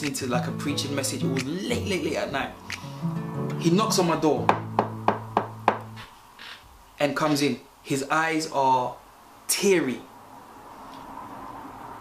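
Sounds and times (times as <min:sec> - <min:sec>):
knuckles knocking on door: 0:04.4 - 0:06.0.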